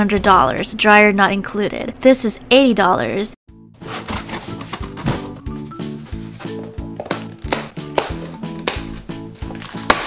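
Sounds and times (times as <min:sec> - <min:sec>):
background music with steady beat: 0:03.5 - 0:10.0
scissors snapping plastic straps: 0:07.0 - 0:10.0.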